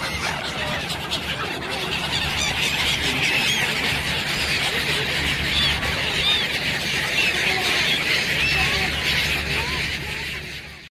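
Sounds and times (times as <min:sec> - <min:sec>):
waterbirds calling in a flock: 0:00.0 - 0:10.9.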